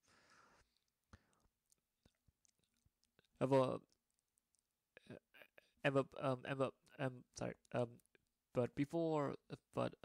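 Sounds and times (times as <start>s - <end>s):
person speaking: 3.0s - 4.0s, 5.0s - 10.0s.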